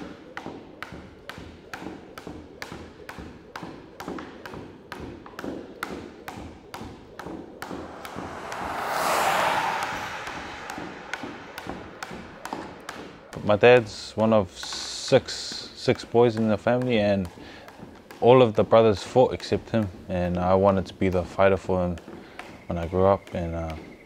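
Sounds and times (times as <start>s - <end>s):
car driving past: 7.2s - 14.0s.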